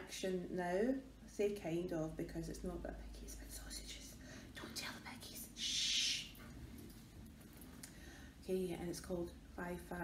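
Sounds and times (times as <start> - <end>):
woman whispering: 3.0 - 6.4.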